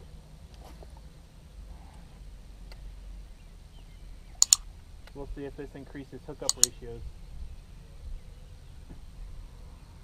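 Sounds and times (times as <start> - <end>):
low steady background rumble: 0.0 - 10.0
sharp mouse clicks: 4.4 - 4.6, 6.4 - 6.8.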